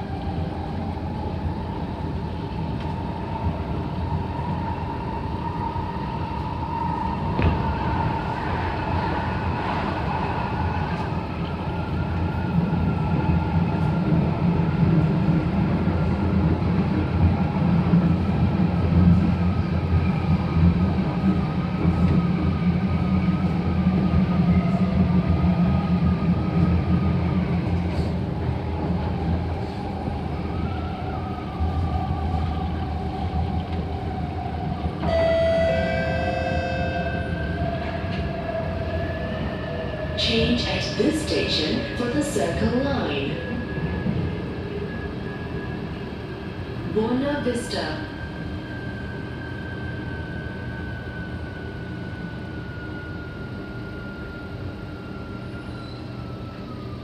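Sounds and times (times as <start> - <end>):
train wheels rumbling on rail: 0.0 - 57.0.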